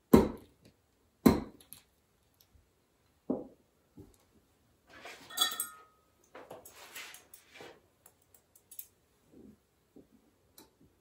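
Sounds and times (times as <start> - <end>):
metal clamps clinking: 5.2 - 6.0.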